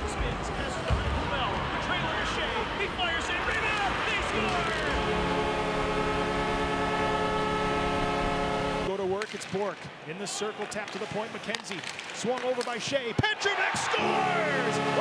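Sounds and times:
goal horn blast: 3.5 - 8.9, 14.0 - 15.0
arena crowd shouting: 13.2 - 15.0.

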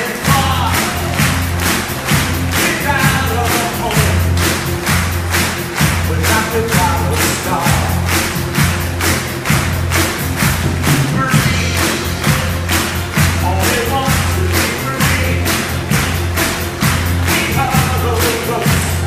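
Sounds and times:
orchestra playing: 0.0 - 19.0
steady percussive beat: 0.0 - 19.0.

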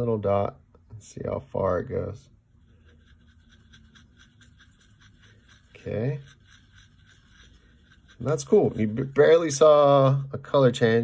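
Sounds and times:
paintbrush scratching in palette: 2.4 - 9.9.

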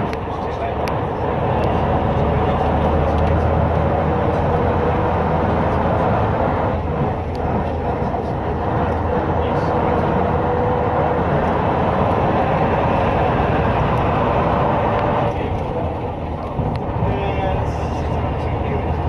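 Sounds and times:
bus diesel engine rumbling: 0.0 - 19.0
road noise: 0.0 - 19.0.

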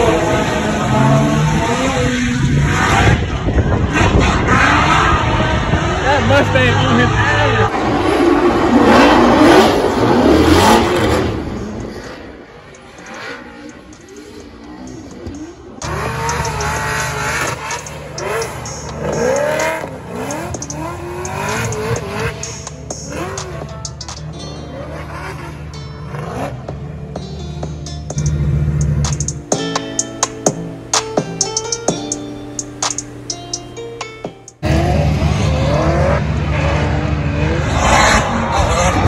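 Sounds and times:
car engines revving: 0.0 - 39.0
music with steady bass: 15.8 - 34.6.

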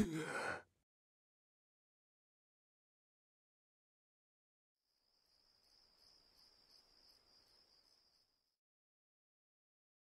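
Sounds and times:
crickets chirring: 5.0 - 8.5.

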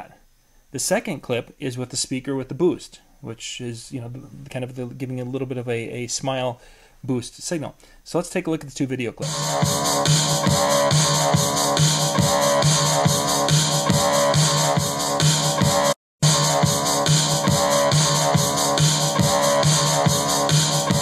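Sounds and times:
beat-driven music with bass: 9.2 - 21.0.

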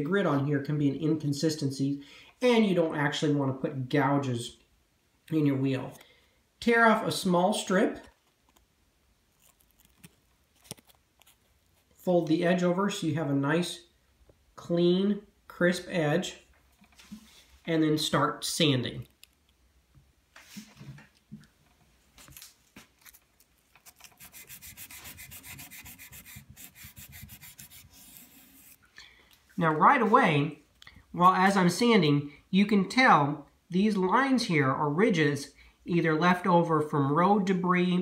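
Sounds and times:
sandpaper clicks and rustles: 22.2 - 28.8.

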